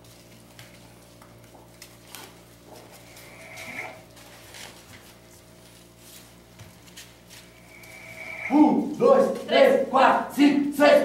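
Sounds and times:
voices crying out together: 7.7 - 9.3.

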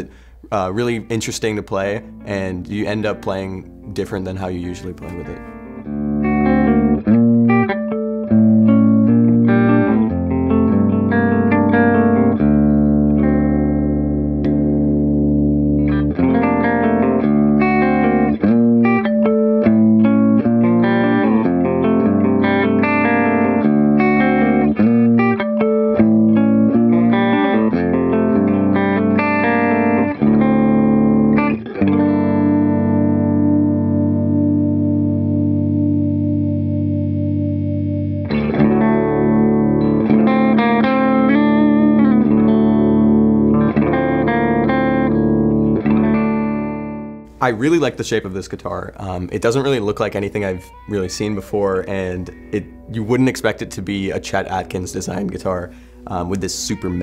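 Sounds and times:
electric guitar playing: 0.0 - 57.0.

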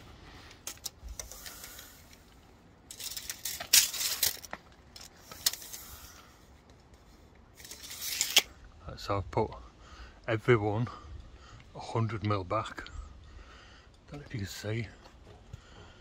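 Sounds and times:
tape measure clicks and rattles: 2.9 - 6.2, 7.6 - 8.5.

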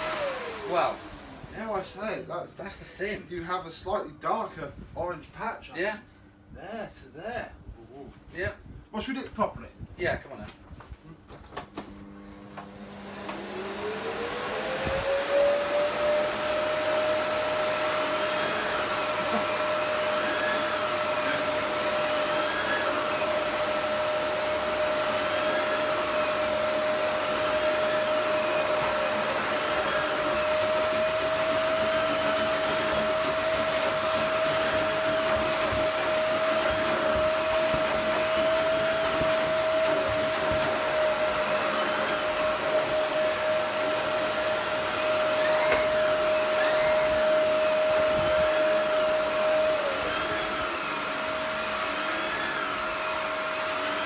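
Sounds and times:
vacuum cleaner motor whine: 0.0 - 2.4, 11.6 - 54.0
vacuum head on carpet: 11.3 - 54.0.

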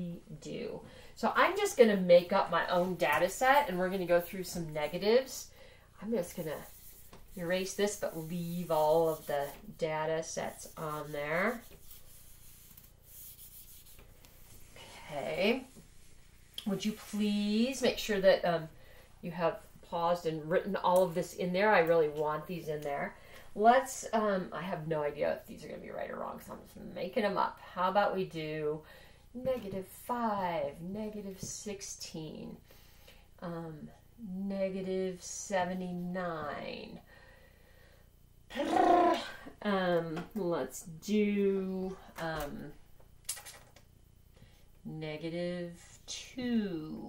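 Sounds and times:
eraser rubbing on whiteboard: 6.2 - 9.8, 10.4 - 14.7
woman saying um: 38.5 - 42.8.

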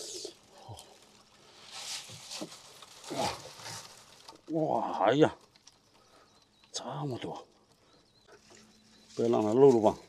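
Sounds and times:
crayfish rustling and clattering: 0.0 - 10.0.

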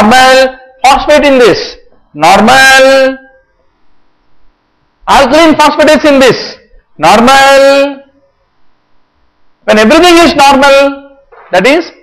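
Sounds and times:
man speaking: 0.0 - 3.4, 5.0 - 8.2, 9.6 - 12.0
faint steady hum: 0.0 - 12.0.

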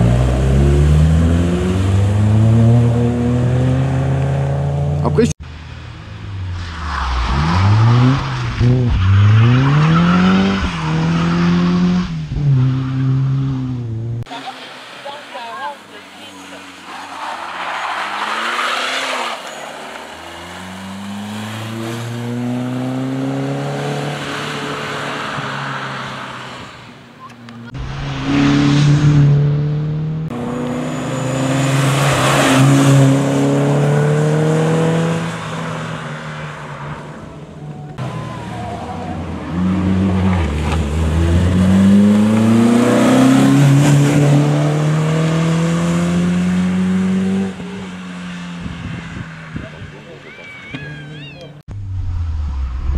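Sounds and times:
rally car engine revving past: 18.1 - 26.4, 27.7 - 36.1, 39.3 - 49.2.

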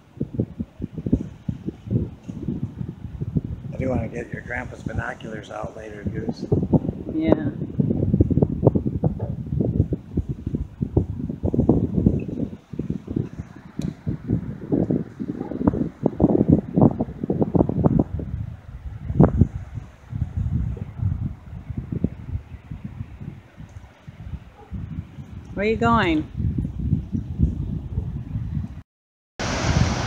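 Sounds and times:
wind buffeting microphone: 0.0 - 28.8, 29.4 - 30.0.

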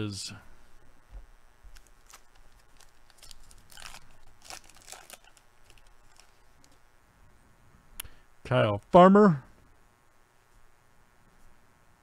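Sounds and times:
wrapper crinkling and tearing: 1.7 - 6.8.

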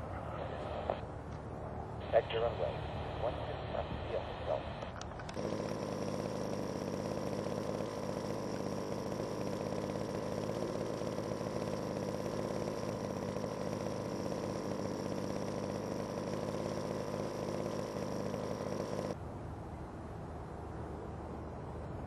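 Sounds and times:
engine running steadily: 0.0 - 22.0.

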